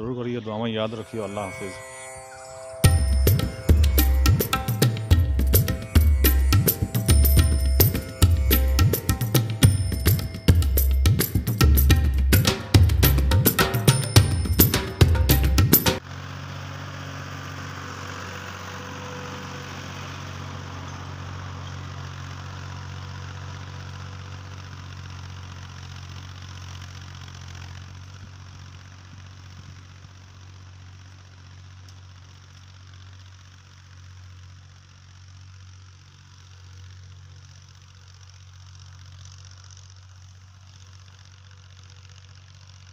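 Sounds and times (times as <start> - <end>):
tractor diesel engine running: 2.8 - 42.9.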